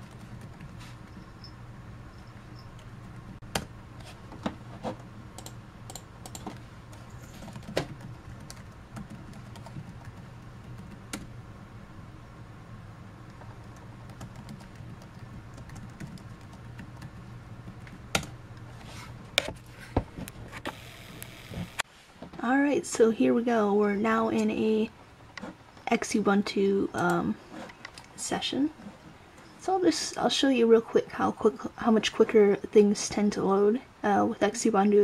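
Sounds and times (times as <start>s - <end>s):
steady low hum: 0.0s - 34.6s.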